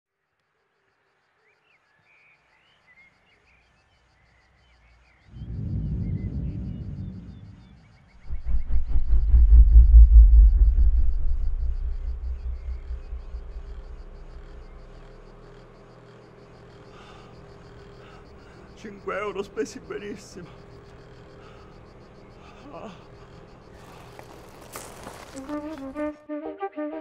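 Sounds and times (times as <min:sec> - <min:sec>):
faint bird chirps: 0:01.3 - 0:09.2
deep fluttering rumble: 0:05.3 - 0:15.6.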